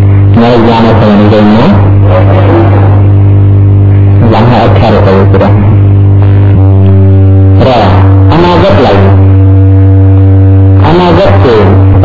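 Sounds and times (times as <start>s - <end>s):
loud drone of held tones: 0.0s - 12.0s.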